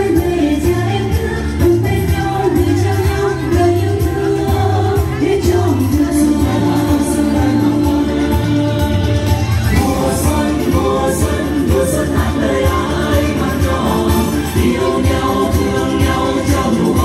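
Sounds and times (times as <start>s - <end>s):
backing music with bass beat: 0.0s - 17.0s
women singing together: 0.0s - 17.0s.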